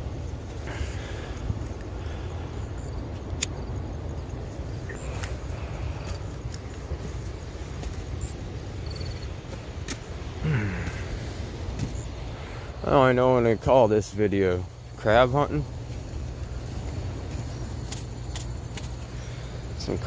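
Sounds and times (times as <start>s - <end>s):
low outdoor rumble: 0.0s - 20.0s
man's falling vocal sound: 10.4s - 11.2s
man speaking: 12.8s - 15.7s.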